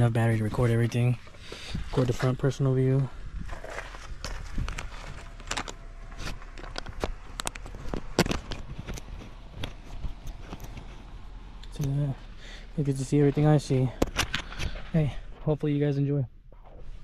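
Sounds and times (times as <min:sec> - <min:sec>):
action camera being handled: 0:03.5 - 0:10.9, 0:14.0 - 0:14.8.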